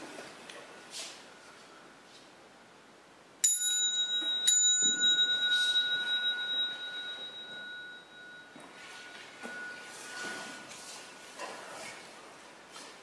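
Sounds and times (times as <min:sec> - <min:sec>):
small temple bell ringing: 0:03.4 - 0:10.7.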